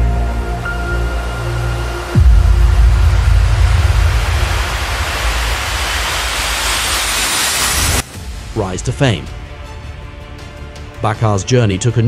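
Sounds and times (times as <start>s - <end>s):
deep electronic bass: 0.0s - 8.1s
white-noise riser: 0.2s - 8.6s.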